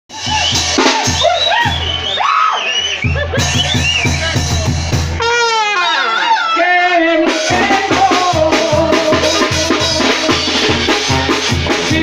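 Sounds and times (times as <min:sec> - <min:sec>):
drums: 0:00.1 - 0:06.4, 0:07.0 - 0:12.0
brass lines: 0:05.2 - 0:08.4.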